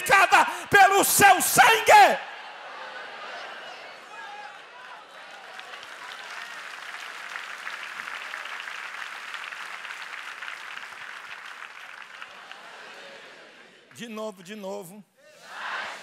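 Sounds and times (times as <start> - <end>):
crowd applauding: 4.2 - 13.5.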